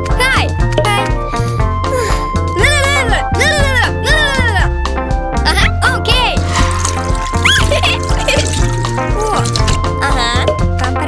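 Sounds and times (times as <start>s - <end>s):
cartoon background music: 0.0s - 11.0s
tap water filling watering can: 6.4s - 9.9s.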